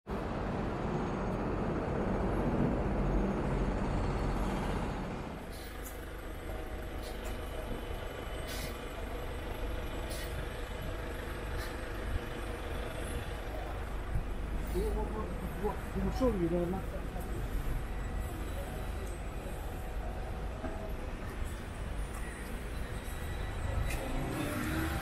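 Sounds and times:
traffic noise: 0:00.1 - 0:25.0
large vehicle passing loudly: 0:22.8 - 0:25.0.

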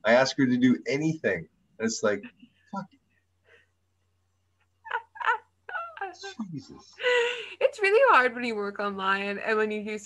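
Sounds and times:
woman laughing high-pitched: 0:04.9 - 0:06.4.

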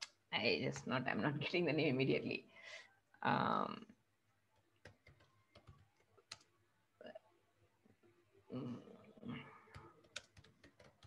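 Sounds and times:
faint keyboard typing: 0:04.5 - 0:06.6, 0:09.3 - 0:11.0.

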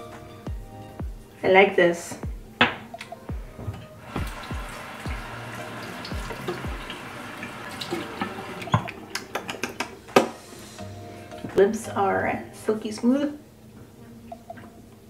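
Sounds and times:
background music with beat: 0:00.0 - 0:01.4, 0:02.1 - 0:11.6
water running from sink tap: 0:04.0 - 0:09.8.

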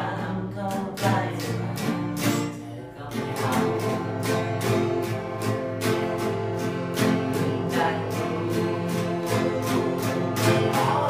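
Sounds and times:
acoustic guitars strummed: 0:00.0 - 0:11.0
young man singing: 0:00.0 - 0:11.0.

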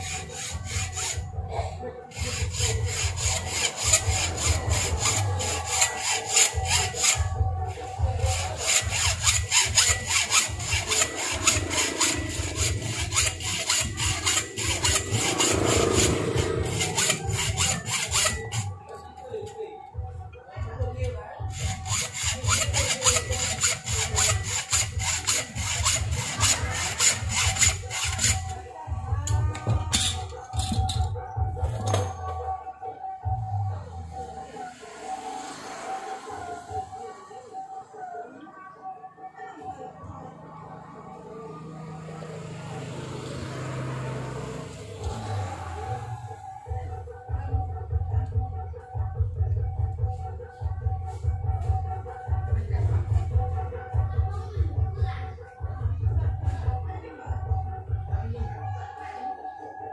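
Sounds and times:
hacksaw sawing metal: 0:00.0 - 0:01.5, 0:02.1 - 0:18.9, 0:21.5 - 0:28.6.

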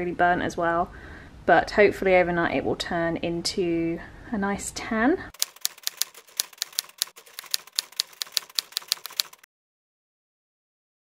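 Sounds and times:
typewriter keys clacking: 0:05.4 - 0:09.5.

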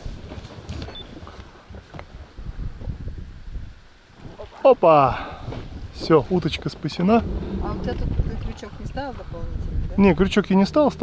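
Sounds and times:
wind buffeting microphone: 0:00.0 - 0:04.5, 0:05.1 - 0:11.0.

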